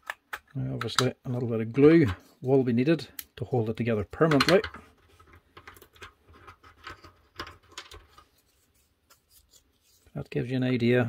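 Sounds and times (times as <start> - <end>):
plywood pieces scratching: 4.2 - 10.1.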